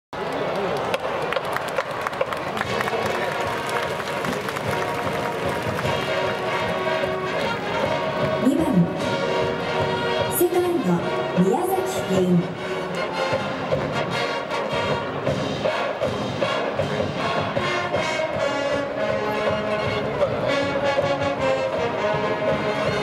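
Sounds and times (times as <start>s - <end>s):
clapping: 0.2s - 6.8s
drumming: 0.9s - 23.0s
held brass chords: 2.6s - 23.0s.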